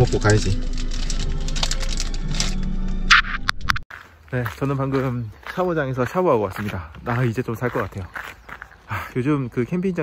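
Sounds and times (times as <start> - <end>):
plastic wrapper crinkling: 0.0 - 2.6
background music: 0.0 - 3.8.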